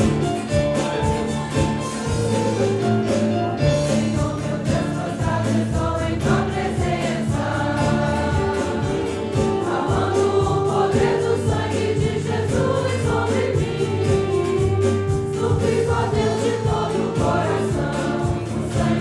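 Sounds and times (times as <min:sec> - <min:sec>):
instrumental accompaniment: 0:00.0 - 0:19.0
group singing a hymn: 0:03.6 - 0:19.0.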